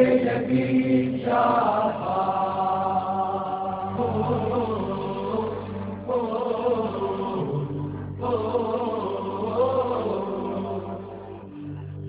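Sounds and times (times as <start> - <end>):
choir chanting sustained notes: 0.0 - 12.0.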